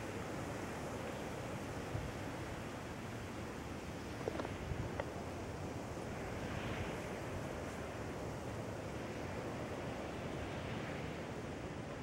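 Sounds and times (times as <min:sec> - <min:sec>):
surf on a beach: 0:00.0 - 0:12.0
wind: 0:00.0 - 0:12.0.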